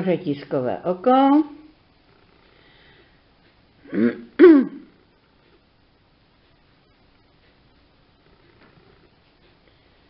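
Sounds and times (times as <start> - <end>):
woman clearing her throat: 3.8 - 4.9.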